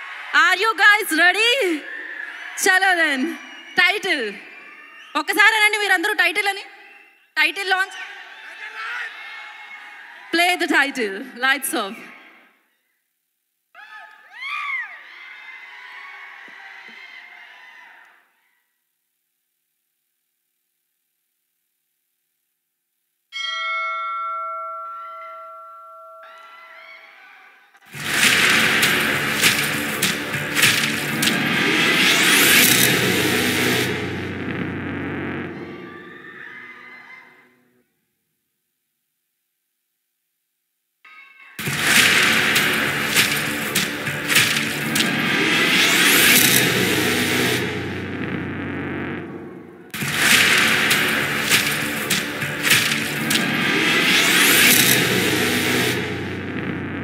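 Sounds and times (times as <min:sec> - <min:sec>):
large bell ringing: 0:23.4 - 0:26.5
sharp crashing impacts: 0:27.9 - 0:35.6, 0:41.6 - 0:48.4, 0:49.2 - 0:56.8
loud hit: 0:28.0 - 0:36.0, 0:41.6 - 0:57.0
low drone: 0:28.0 - 0:36.0, 0:41.6 - 0:57.0.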